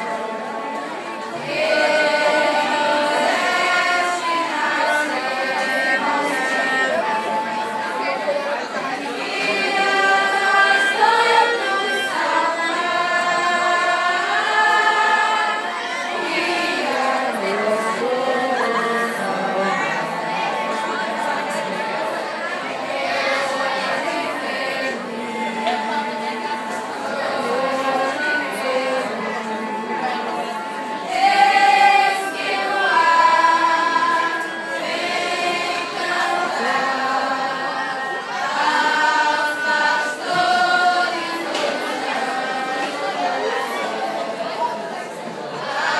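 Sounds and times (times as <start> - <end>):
choir singing: 0.0 - 45.9.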